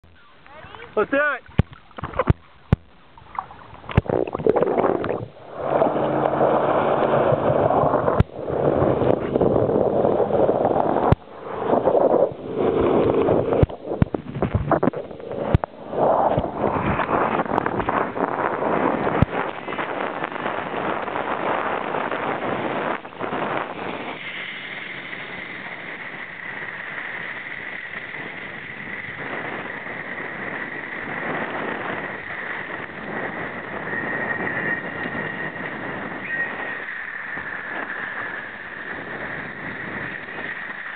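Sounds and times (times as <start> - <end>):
thin steady whine: 0.0 - 40.9
water churning and splashing: 0.0 - 40.9
wind rushing: 3.2 - 40.9.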